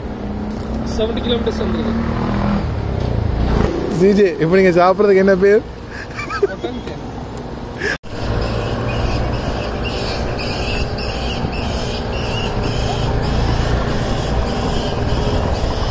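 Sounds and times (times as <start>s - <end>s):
insects chirping rhythmically: 8.2s - 15.9s.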